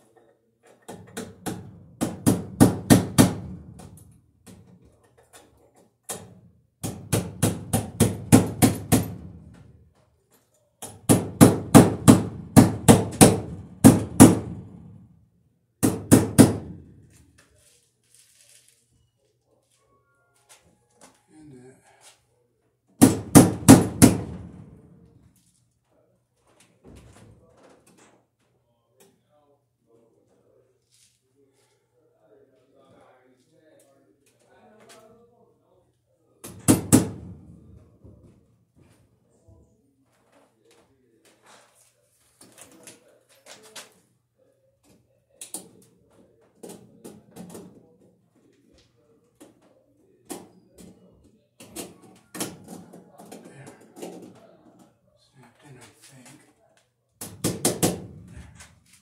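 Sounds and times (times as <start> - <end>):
hammer striking wood: 0.9 - 4.0, 6.1 - 9.6, 10.8 - 14.9, 15.8 - 16.9, 23.0 - 24.7, 36.4 - 37.6, 57.2 - 58.3.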